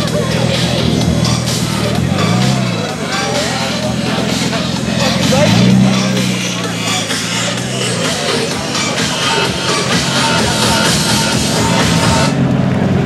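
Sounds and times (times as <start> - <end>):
car engine revving: 0.0 - 13.0
crowd voices: 0.0 - 13.0
music: 0.0 - 13.0.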